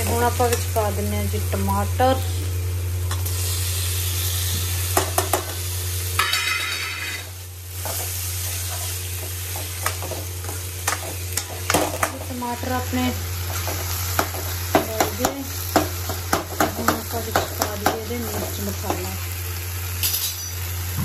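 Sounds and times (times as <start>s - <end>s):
onion masala sizzling in a pan: 0.0s - 21.0s.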